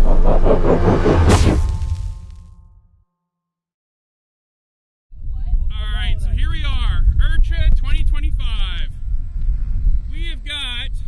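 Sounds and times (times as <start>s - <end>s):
low pulsing rumble: 0.0s - 2.8s
whoosh: 0.0s - 2.8s.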